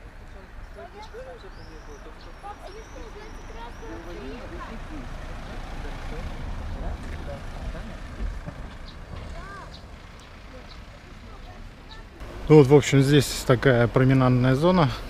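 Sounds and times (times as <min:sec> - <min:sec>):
distant voices: 0:00.0 - 0:15.0
van driving past: 0:00.0 - 0:15.0
faint bird chirps: 0:01.0 - 0:04.4.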